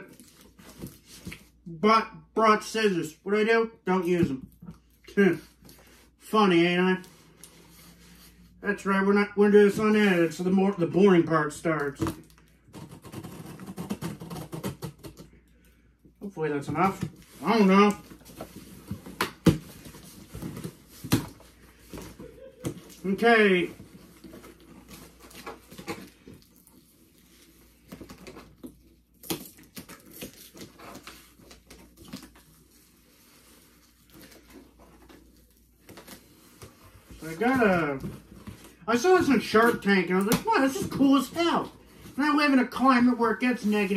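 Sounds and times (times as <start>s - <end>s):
scissors slitting packing tape: 12.8s - 15.2s.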